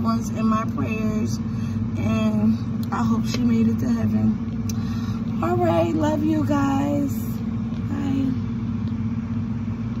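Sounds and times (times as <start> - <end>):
freezer humming: 0.0 - 10.0
person's voice: 5.4 - 8.4.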